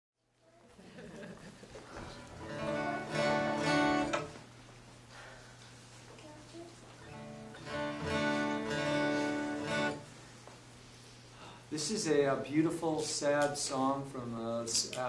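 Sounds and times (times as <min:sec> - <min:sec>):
acoustic guitar strumming chords: 0:02.1 - 0:04.4, 0:07.0 - 0:10.1.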